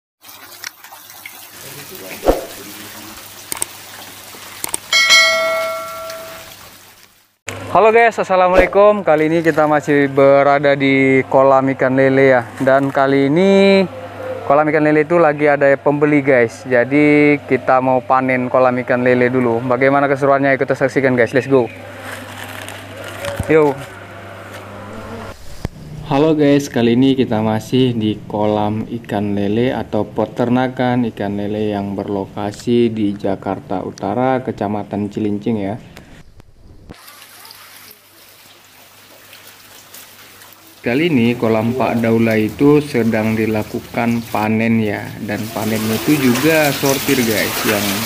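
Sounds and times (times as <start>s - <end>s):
fish splashing in water: 0.2s - 6.9s, 37.0s - 44.3s
notification bell ding: 4.9s - 6.5s.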